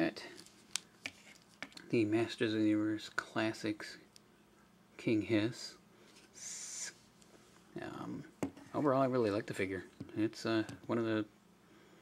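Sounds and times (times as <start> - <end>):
person hissing: 6.4 - 7.0.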